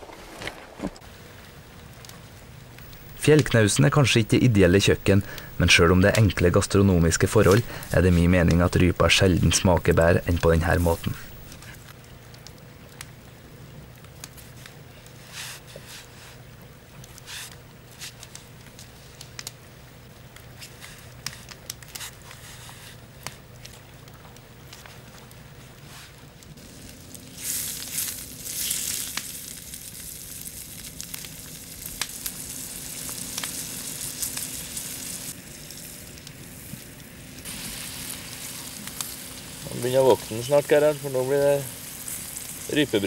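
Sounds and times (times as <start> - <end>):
meat sizzling in a pan: 26.6 - 43.0.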